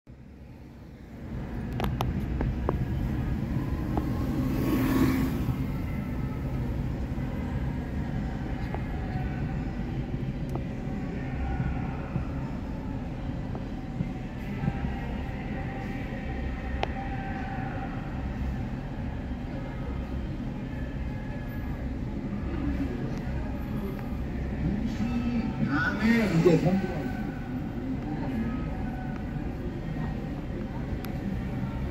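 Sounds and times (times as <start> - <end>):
car engine and road noise: 0.1 - 31.9.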